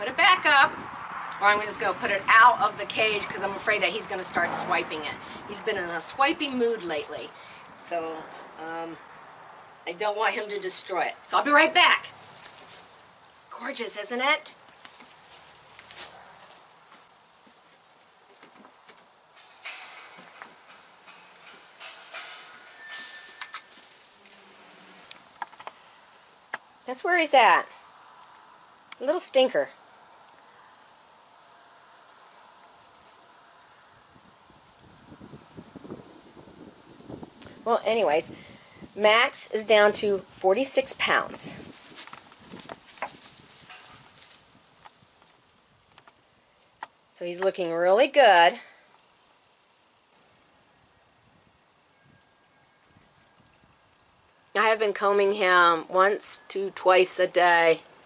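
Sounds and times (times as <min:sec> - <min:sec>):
footsteps rustling through straw: 0:12.1 - 0:13.5, 0:14.6 - 0:17.1, 0:23.1 - 0:25.0, 0:41.5 - 0:45.9.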